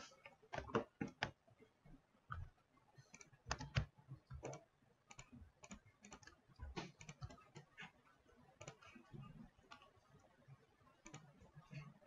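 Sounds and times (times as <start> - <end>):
computer mouse clicks: 0.2 - 1.4, 3.1 - 7.9, 8.6 - 9.9, 11.0 - 11.9
keyboard clicks: 0.2 - 1.4, 3.1 - 7.7, 8.6 - 8.9, 11.0 - 11.3.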